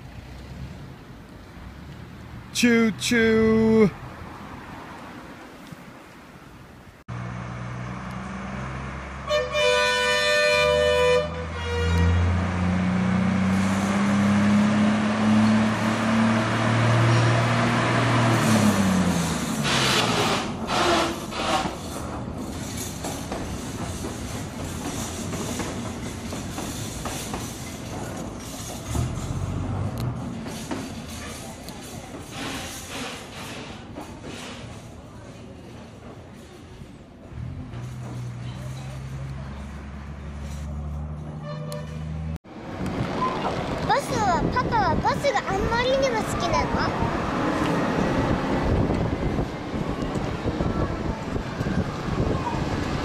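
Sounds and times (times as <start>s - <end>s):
train rolling on track: 0.0s - 53.0s
rail bus engine revving: 7.1s - 35.1s, 36.5s - 53.0s
train horn: 9.2s - 12.3s, 41.4s - 42.2s
wheels clicking over rail joints: 19.0s - 39.6s.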